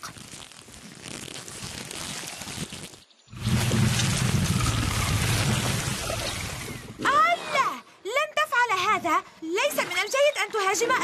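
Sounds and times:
deep rumble: 0:03.3 - 0:07.0.

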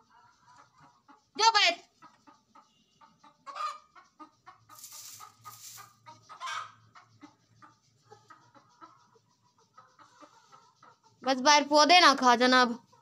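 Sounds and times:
hens clucking: 0:00.0 - 0:13.0
rustling noise: 0:04.7 - 0:06.0.

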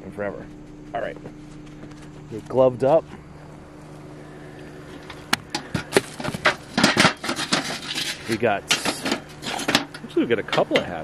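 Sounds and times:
car engine idling: 0:00.0 - 0:11.0
scrap metal clinking and scraping: 0:04.8 - 0:10.9.

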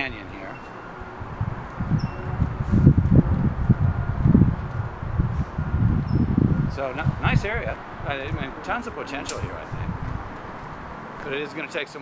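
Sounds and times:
wind buffeting microphone: 0:00.0 - 0:11.2.

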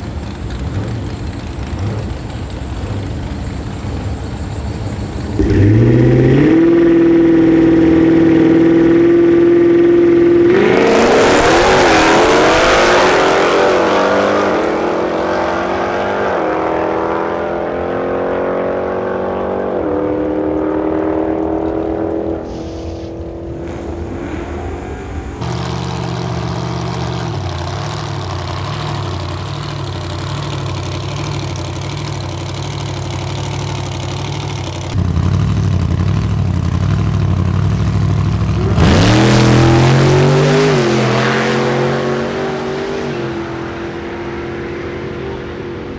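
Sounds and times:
hot-rod engine lumpy idle: 0:00.0 - 0:05.4, 0:25.4 - 0:38.8
car engines revving and launching: 0:00.0 - 0:35.0, 0:37.5 - 0:45.9.

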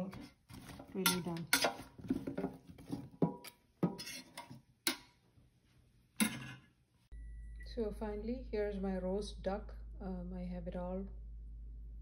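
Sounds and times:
metal utensils clinking on a pan: 0:00.8 - 0:01.9, 0:03.2 - 0:05.1, 0:06.2 - 0:06.6
steady low hum: 0:07.1 - 0:12.0.

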